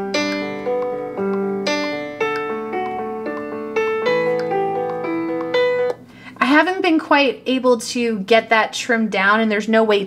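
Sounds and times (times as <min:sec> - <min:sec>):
piano-like chords: 0:00.0 - 0:06.1
woman's voice: 0:06.4 - 0:10.0.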